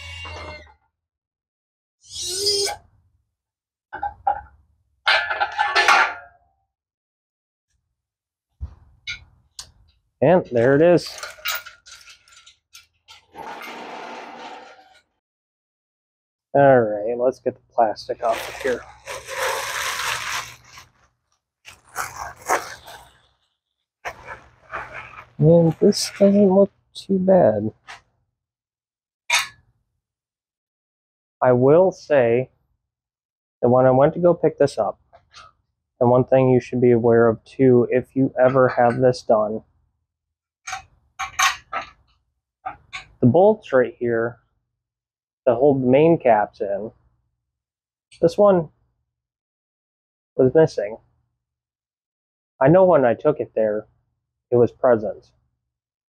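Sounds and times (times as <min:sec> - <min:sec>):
metal engine block clattering: 0:05.1 - 0:06.2
metal chain rattling and scraping: 0:10.6 - 0:15.0, 0:21.7 - 0:23.4.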